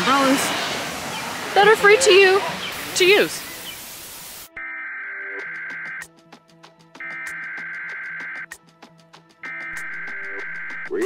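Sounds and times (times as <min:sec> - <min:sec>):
static hiss: 0:00.0 - 0:04.6
high electronic alert tone: 0:04.6 - 0:06.0.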